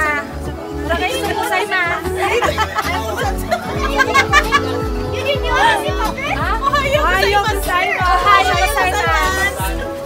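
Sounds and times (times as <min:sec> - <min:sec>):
music with bass beat: 0:00.0 - 0:10.0
women laughing and squealing: 0:00.7 - 0:10.0.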